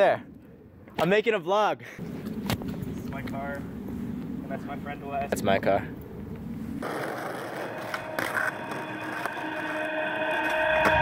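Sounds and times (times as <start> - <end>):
skateboard wheels rolling on asphalt: 2.1 - 9.8.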